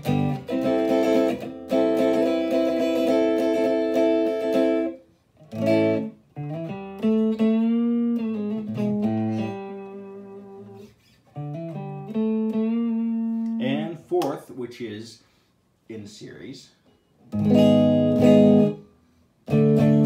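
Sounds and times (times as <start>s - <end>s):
clean electric guitar: 0.0s - 14.2s, 16.8s - 20.0s
person speaking: 13.5s - 16.9s.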